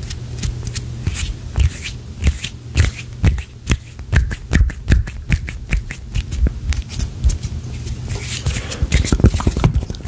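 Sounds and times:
hands rubbing together: 0:05.1 - 0:09.7.

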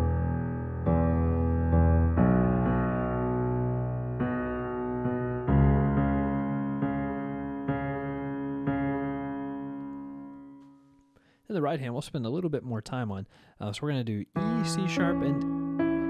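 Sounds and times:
low piano chords: 0:00.0 - 0:11.2, 0:14.3 - 0:16.0.

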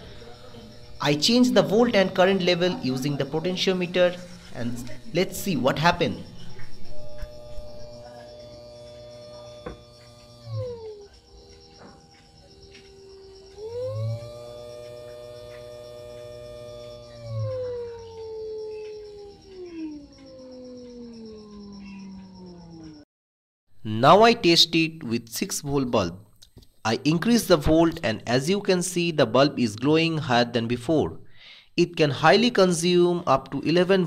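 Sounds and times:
small electric motor whine: 0:00.0 - 0:23.0.

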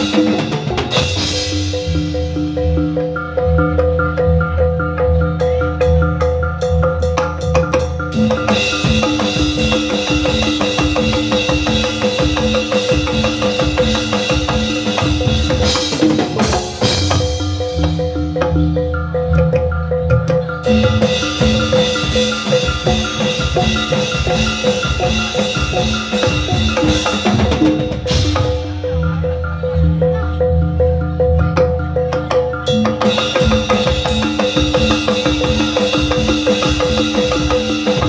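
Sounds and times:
fast steady drum rhythm: 0:00.0 - 0:30.4, 0:31.5 - 0:38.0
gamelan music with metallophones: 0:00.0 - 0:38.0.

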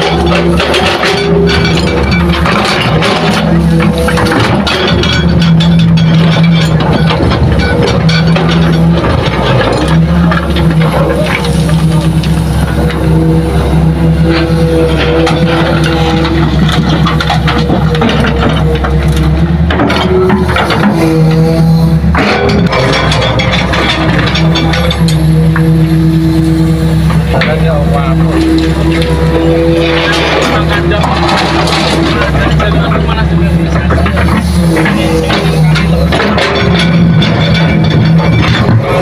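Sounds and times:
clatter: 0:00.0 - 0:13.1, 0:14.2 - 0:26.2, 0:27.1 - 0:39.0
excavator diesel engine running: 0:00.0 - 0:39.0.

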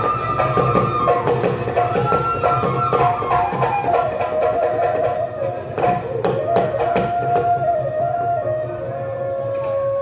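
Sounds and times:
dhol drums beating: 0:00.0 - 0:10.0
wind instrument melody: 0:00.0 - 0:10.0.

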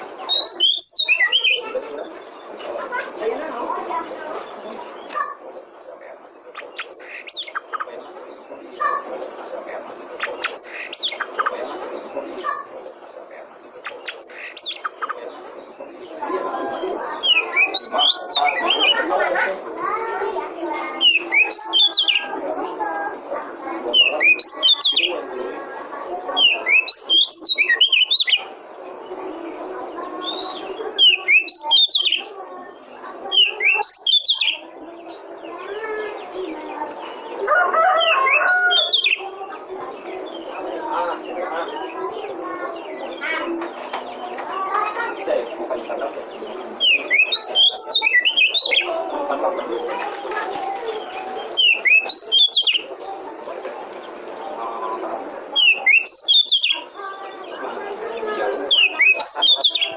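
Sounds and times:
bird warbling chatter: 0:00.0 - 0:59.9
bird whistling phrases: 0:00.2 - 0:01.8, 0:06.5 - 0:07.9, 0:10.2 - 0:11.5, 0:13.8 - 0:15.2, 0:16.6 - 0:19.1, 0:21.0 - 0:22.3, 0:26.4 - 0:28.5, 0:30.2 - 0:32.3, 0:33.3 - 0:34.6, 0:37.6 - 0:39.3, 0:46.8 - 0:48.9, 0:51.4 - 0:52.9, 0:55.5 - 0:59.9.

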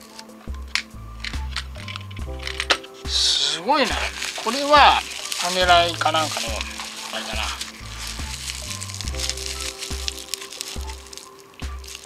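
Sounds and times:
bubble wrap crinkling: 0:00.0 - 0:12.0
music with stepping bass line: 0:00.4 - 0:12.0.

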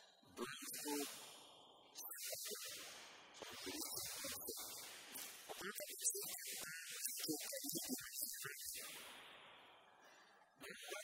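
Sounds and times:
man speaking: 0:00.4 - 0:01.1.

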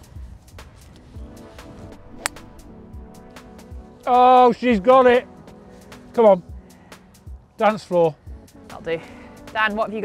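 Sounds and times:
golf driver striking ball: 0:01.9 - 0:03.3.

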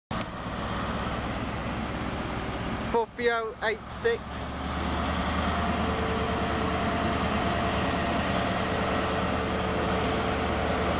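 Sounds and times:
diesel engine running: 0:00.1 - 0:10.9
train rumbling: 0:00.1 - 0:10.9.

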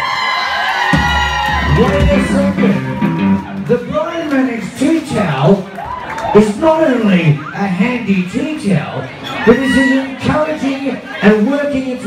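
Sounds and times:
crowd cheering and whooping: 0:00.0 - 0:04.0, 0:05.6 - 0:06.6
live band music: 0:00.9 - 0:04.2.

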